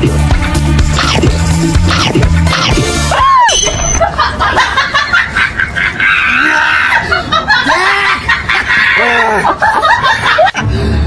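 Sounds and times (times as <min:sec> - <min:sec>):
short pitched calls: 0:01.0 - 0:04.0.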